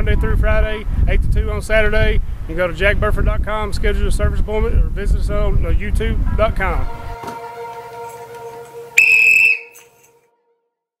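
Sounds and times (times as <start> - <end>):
sports whistle blast: 6.9 - 10.2.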